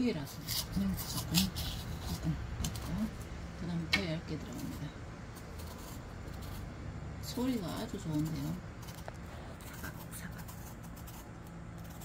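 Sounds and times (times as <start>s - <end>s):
knife cutting melon rind: 0.0s - 12.0s.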